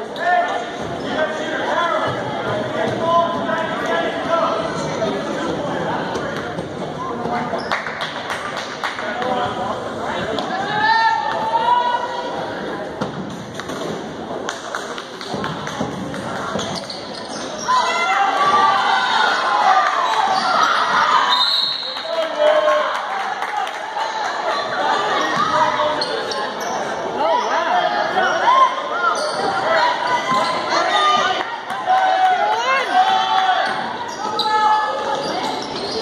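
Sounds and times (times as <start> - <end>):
crowd shouting and cheering: 0.0 - 14.2, 15.2 - 36.0
spectators' voices: 0.0 - 36.0.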